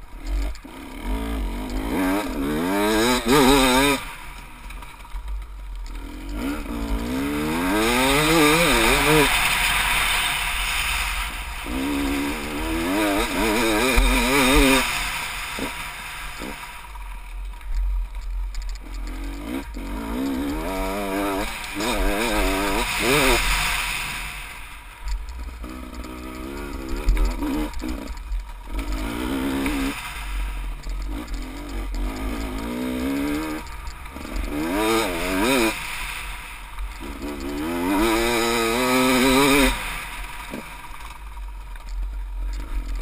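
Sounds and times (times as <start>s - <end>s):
dirt bike engine revving: 0.0s - 17.3s, 18.1s - 43.0s.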